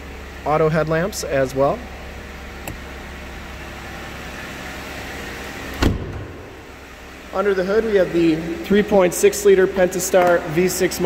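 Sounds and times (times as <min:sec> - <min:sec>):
car engine idling: 0:00.0 - 0:11.0
car door shutting: 0:05.6 - 0:06.6.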